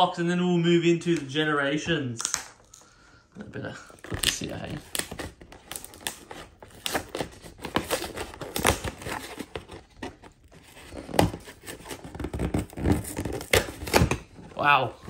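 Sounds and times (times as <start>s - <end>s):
packaging tearing and crinkling: 3.9s - 14.3s.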